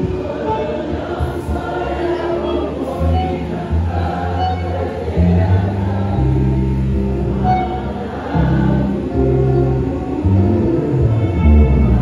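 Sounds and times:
congregation singing: 0.0s - 12.0s
steady low bass: 0.0s - 12.0s.

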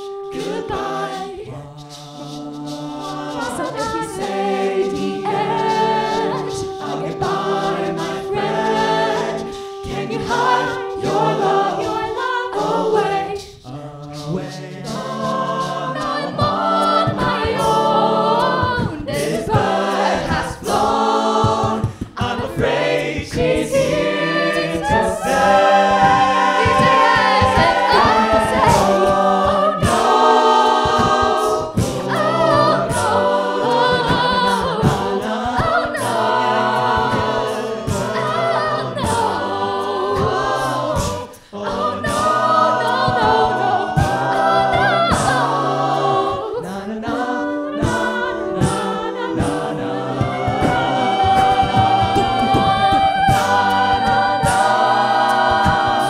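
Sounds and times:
beatboxed vocal percussion: 0.0s - 56.0s
group singing in harmony: 0.0s - 56.0s.

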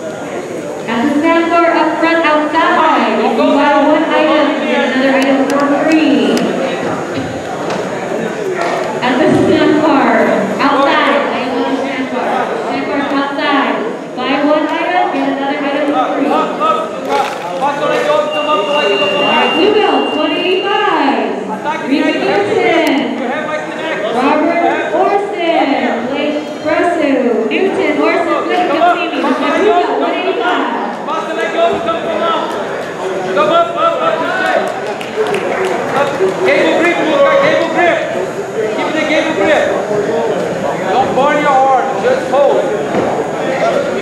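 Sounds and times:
voices talking and calling out: 0.0s - 44.0s.

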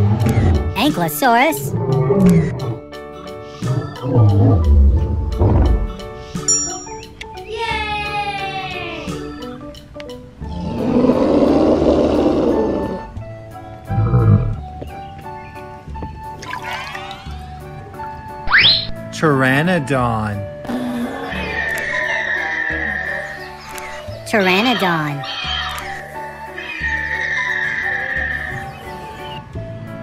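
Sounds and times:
background music: 0.0s - 30.0s
dinosaur roar: 1.7s - 2.8s, 3.6s - 6.0s, 10.4s - 13.2s, 13.9s - 14.6s, 20.6s - 23.5s, 26.6s - 29.0s
creature's high screech: 21.3s - 23.3s.

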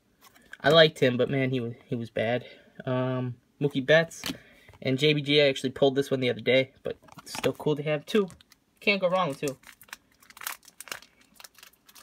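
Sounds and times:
plastic crinkling: 7.0s - 12.0s.

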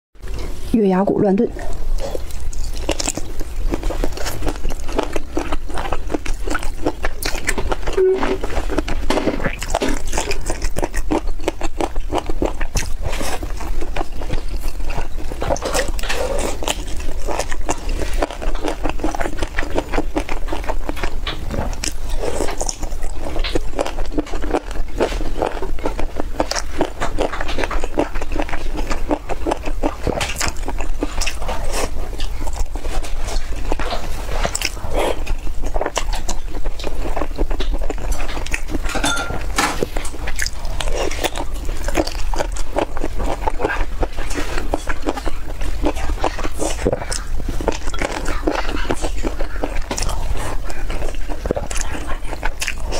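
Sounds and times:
wet chewing and biting of meat: 1.5s - 52.9s
low hum: 7.2s - 10.4s.

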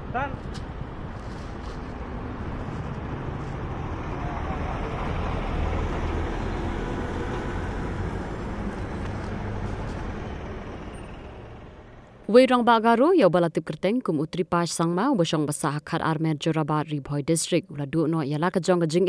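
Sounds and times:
truck passing on highway: 0.0s - 12.3s.

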